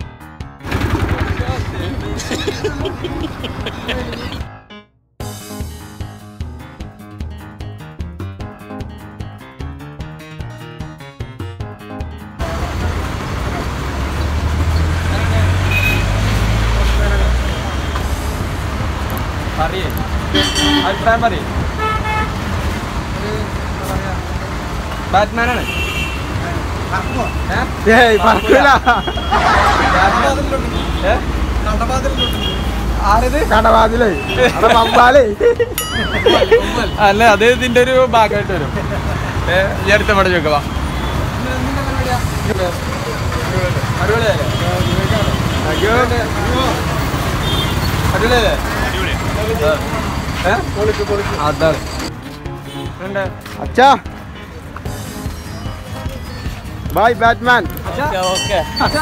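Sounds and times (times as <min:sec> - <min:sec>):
busy street traffic: 0:00.0 - 0:59.0.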